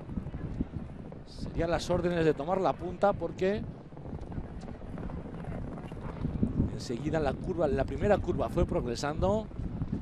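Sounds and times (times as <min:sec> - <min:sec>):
horses galloping on sand: 0:00.0 - 0:10.0.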